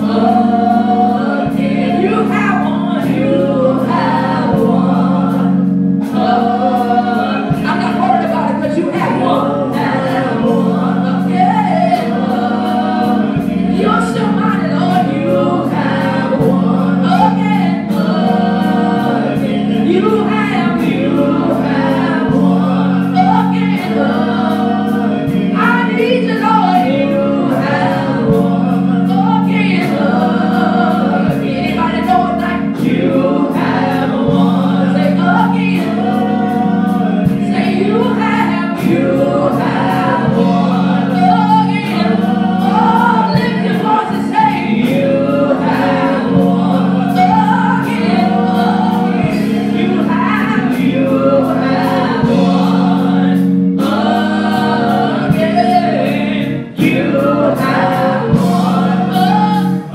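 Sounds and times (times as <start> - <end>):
drum kit beat: 0.0 - 59.9
organ chords: 0.0 - 59.9
woman singing gospel: 0.0 - 59.9.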